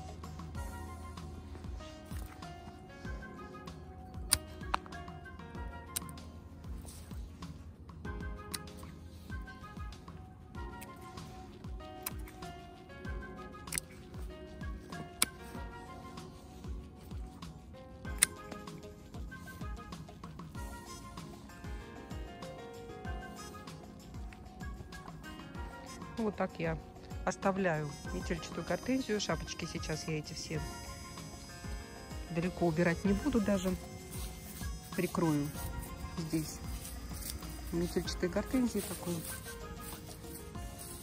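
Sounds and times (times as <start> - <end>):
background music: 0.0 - 41.0
secateurs snipping woody stems: 13.7 - 14.0, 18.2 - 18.7, 32.7 - 40.2.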